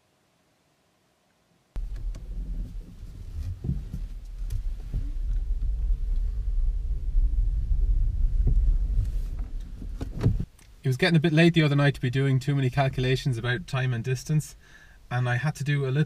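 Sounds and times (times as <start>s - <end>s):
knocks over road bumps: 1.8s - 10.5s
road and tyre rumble: 1.8s - 10.6s.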